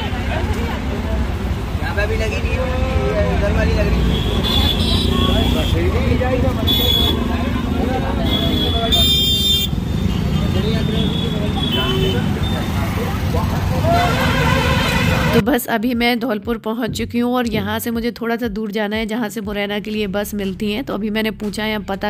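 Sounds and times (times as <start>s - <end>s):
motorcycle and rickshaw engines: 0.0s - 15.4s
vehicle horn toots: 4.0s - 5.9s, 6.6s - 7.3s, 8.2s - 12.8s, 13.8s - 15.4s
people talking: 10.3s - 14.4s, 15.1s - 22.0s.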